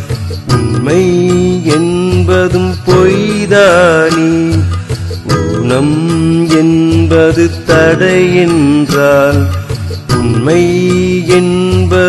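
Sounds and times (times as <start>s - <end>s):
instrumental backing with steady beat: 0.0s - 12.0s
melodic singing: 0.0s - 12.0s.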